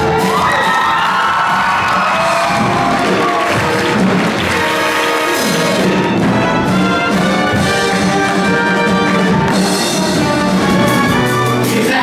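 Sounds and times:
rising shout: 0.0 - 3.8
audience cheering and whooping: 0.0 - 5.3
pit orchestra playing show music: 0.0 - 12.0.

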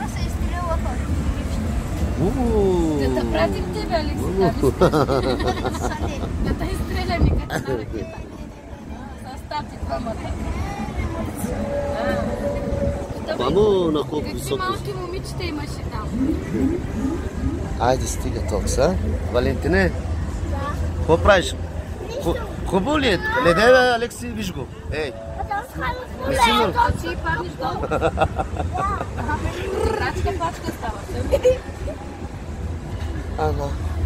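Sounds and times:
drawn out voices: 0.0 - 34.0
low steady rumble: 9.7 - 22.0
low rumble: 11.2 - 14.0.

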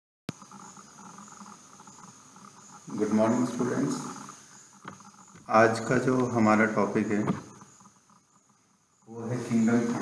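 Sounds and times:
high-pitched whine: 0.3 - 10.0.

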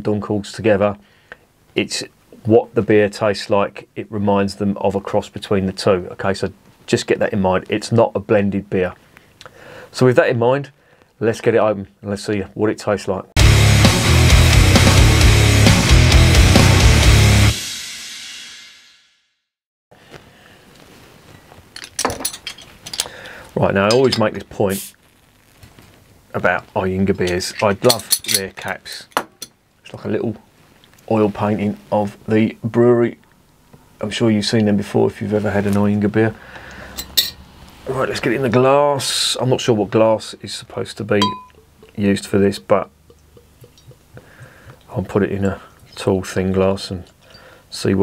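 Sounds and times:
bottle opener clinking on bottle cap: 37.0 - 37.4, 41.2 - 41.6.

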